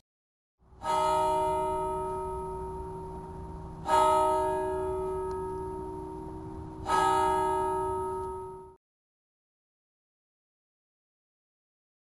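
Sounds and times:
bell ringing: 0:00.8 - 0:08.8.

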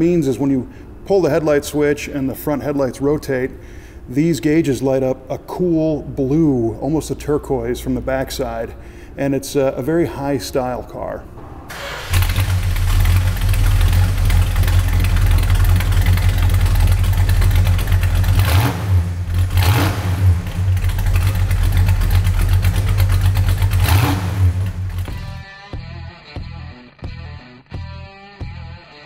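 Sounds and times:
car engine idling: 0:11.4 - 0:25.4
engine throttle blips: 0:11.4 - 0:25.4.

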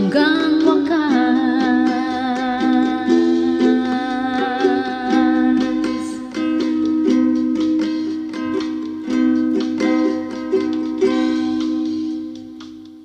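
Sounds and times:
ukulele strumming: 0:00.0 - 0:13.0.

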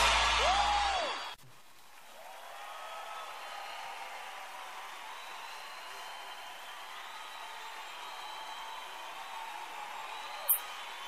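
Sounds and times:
faint steady hiss: 0:01.4 - 0:02.5.

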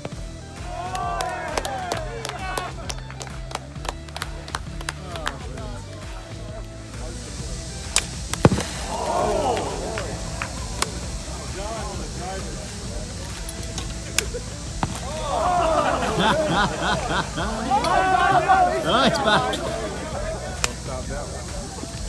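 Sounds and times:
background music: 0:00.0 - 0:22.0
golf clubs striking balls: 0:00.0 - 0:22.0
voices calling out: 0:00.0 - 0:22.0.

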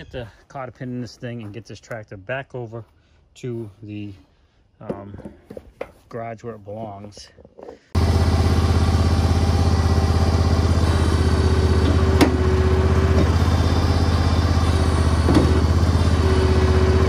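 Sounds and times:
garden tractor engine running: 0:06.8 - 0:17.0.

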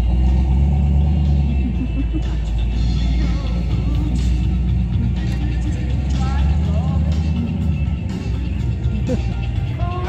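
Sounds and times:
background music: 0:00.0 - 0:10.0
car engine running: 0:00.0 - 0:10.0.

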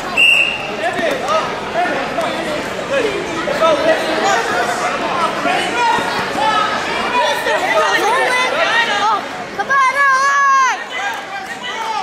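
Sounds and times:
people calling out in echoing gym: 0:00.0 - 0:12.0
referee's whistle blast: 0:00.1 - 0:00.8.

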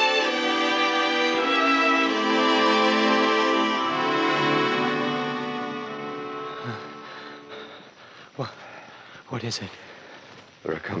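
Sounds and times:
orchestral music with held chords: 0:00.0 - 0:07.5.

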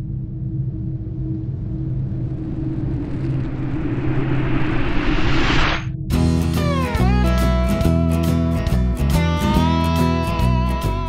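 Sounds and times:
low rumble drone: 0:00.0 - 0:08.6
rushing whoosh: 0:01.0 - 0:07.2.

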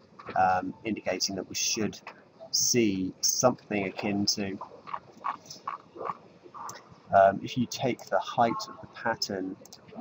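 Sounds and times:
man's hesitation sounds: 0:00.2 - 0:10.0.

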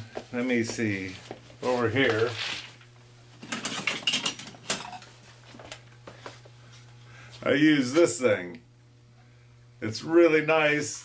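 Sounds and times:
objects clinking and rattling: 0:03.4 - 0:05.1.

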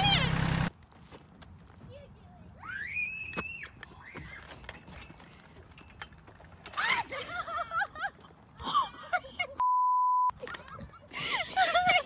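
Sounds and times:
censor bleep: 0:09.6 - 0:10.3.

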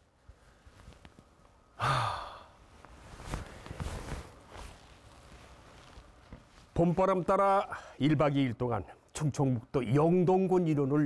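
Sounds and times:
soft rustling: 0:00.0 - 0:01.7, 0:02.6 - 0:07.5
man sighing: 0:01.7 - 0:02.6.

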